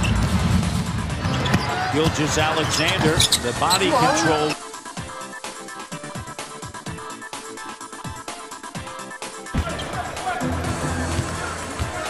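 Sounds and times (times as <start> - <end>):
background music: 0.0 - 12.0
crowd noise: 1.0 - 4.6, 9.5 - 12.0
basketball dribbling on hardwood: 11.0 - 12.0.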